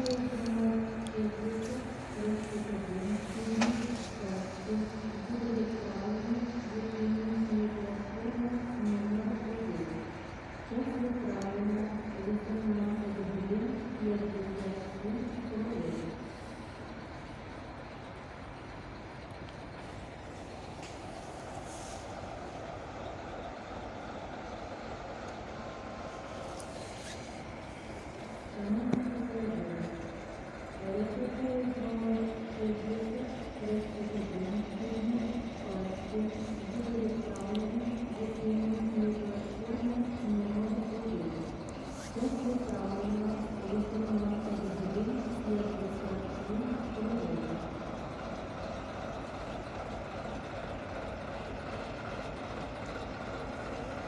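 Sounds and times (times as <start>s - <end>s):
distant diesel locomotive rumble: 0.0s - 54.0s.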